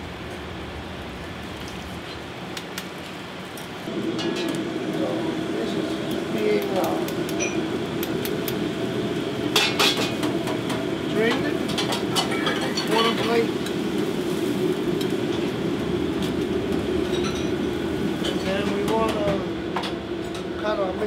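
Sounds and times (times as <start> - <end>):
gas burners and exhaust hood rushing: 0.0 - 21.0
metal utensils clinking: 11.3 - 13.8.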